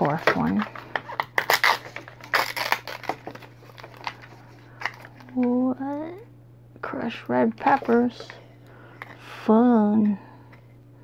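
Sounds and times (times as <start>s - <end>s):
plastic wrapper tearing and crinkling: 0.0s - 5.5s.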